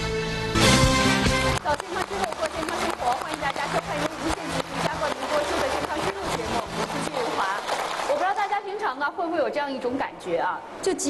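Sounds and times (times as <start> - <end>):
woman speaking: 1.6 - 11.0.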